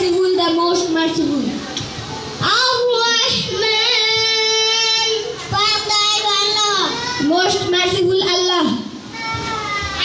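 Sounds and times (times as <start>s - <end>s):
child singing into a microphone: 2.4s - 8.3s.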